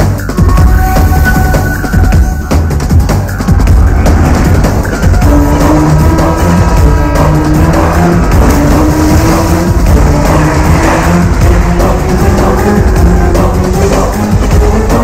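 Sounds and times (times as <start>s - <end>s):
car engine sound effects: 0.0s - 15.0s
dramatic film music: 0.0s - 15.0s
low rising tone: 0.4s - 15.0s.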